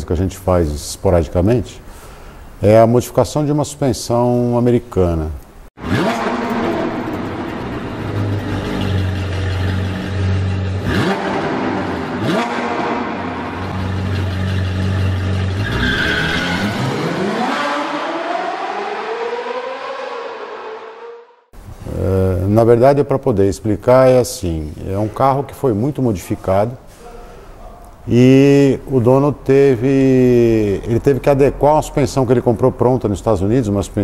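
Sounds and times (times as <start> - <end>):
car engine drone and revving: 5.8 - 21.5.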